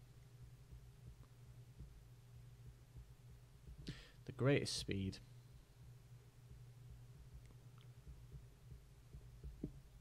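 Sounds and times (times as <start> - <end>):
steady low hum: 0.0 - 10.0
stylus knocking on tablet: 8.1 - 9.8.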